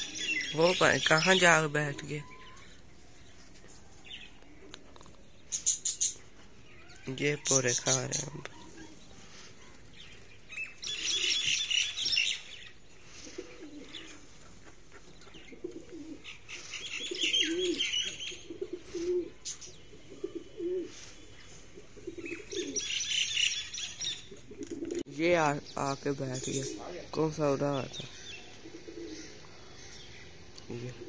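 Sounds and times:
pigeons cooing: 0:00.0 - 0:01.6, 0:07.9 - 0:25.1, 0:28.1 - 0:31.0
high-pitched bird calls: 0:00.0 - 0:03.4, 0:04.0 - 0:12.8, 0:13.6 - 0:25.0.

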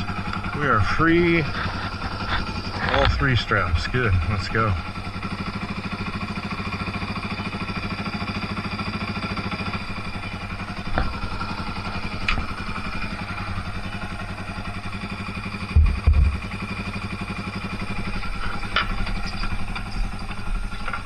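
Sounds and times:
dirt bike engine idling: 0:00.0 - 0:21.0.

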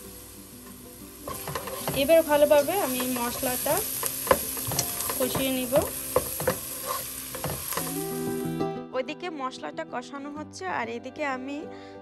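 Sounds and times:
masala sizzling in a frying pan: 0:00.0 - 0:08.6
spatula stirring and scraping: 0:01.3 - 0:08.0
spatula knocking against pan: 0:04.2 - 0:06.7, 0:07.3 - 0:07.9.

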